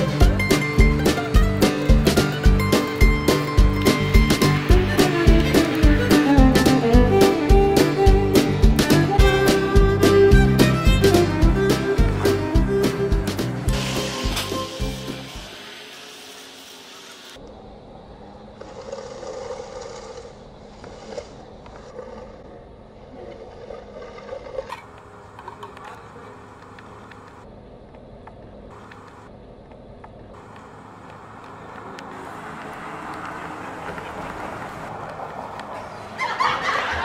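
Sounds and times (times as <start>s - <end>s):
music: 0.0s - 15.8s.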